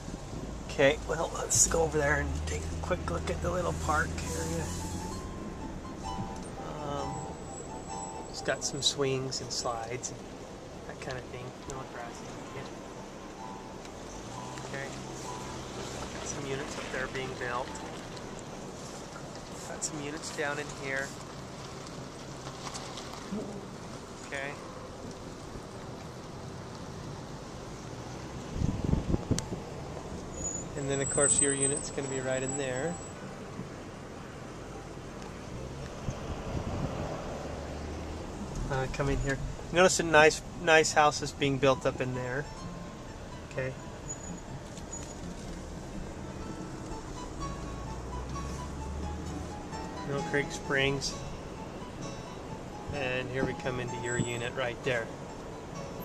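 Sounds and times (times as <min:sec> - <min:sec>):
car road and engine noise: 0:00.0 - 0:56.0.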